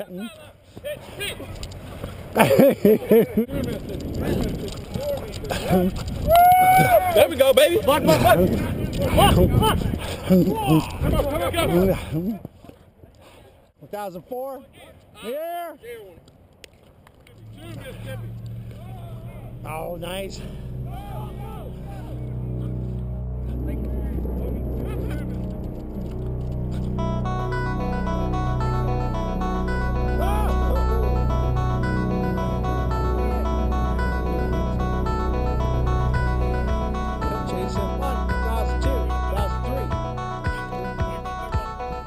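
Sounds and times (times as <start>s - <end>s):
man laughing loudly: 2.3s - 3.8s, 6.5s - 12.4s, 30.1s - 31.4s, 37.5s - 41.9s
low rumble: 3.5s - 11.3s, 17.4s - 42.0s
steady rushing noise: 18.1s - 28.0s.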